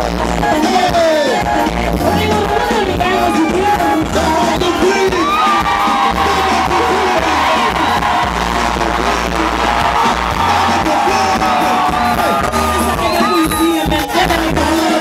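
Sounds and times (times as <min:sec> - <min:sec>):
live pop band: 0:00.0 - 0:15.0
woman singing into microphone: 0:01.6 - 0:04.4
crowd shouting: 0:04.3 - 0:15.0.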